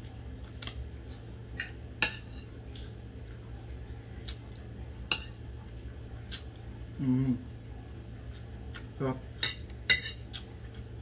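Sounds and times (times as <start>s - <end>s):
low steady hum: 0.0s - 11.0s
spoon clinking and scraping plate: 9.4s - 10.3s.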